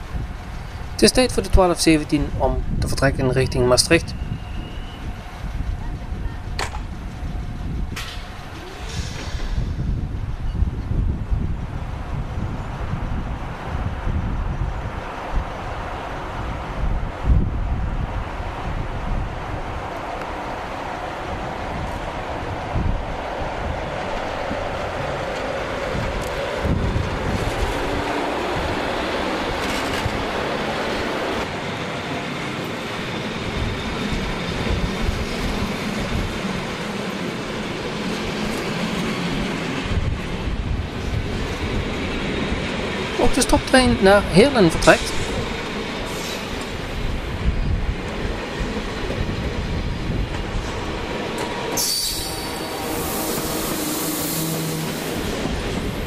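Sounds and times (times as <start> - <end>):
electric locomotive rumbling past: 0.0 - 56.0
wheels on rail: 4.2 - 43.2, 45.1 - 56.0
train knocks: 6.5 - 7.0, 7.8 - 10.0, 50.2 - 56.0.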